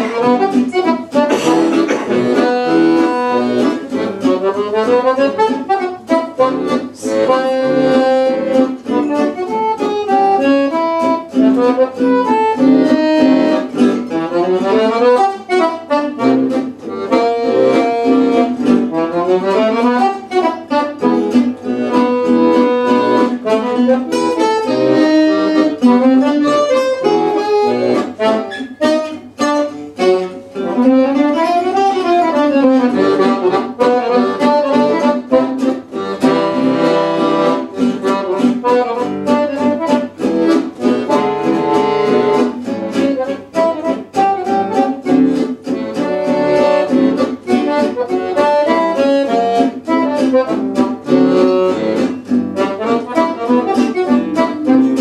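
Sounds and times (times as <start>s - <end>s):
accordion melody: 0.0s - 55.0s
strummed acoustic guitar: 0.0s - 55.0s.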